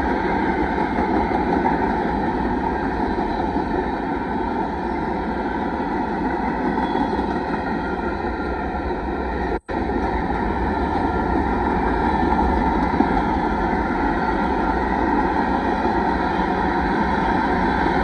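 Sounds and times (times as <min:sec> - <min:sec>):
freight train wheels rumbling on rails: 0:00.0 - 0:18.0.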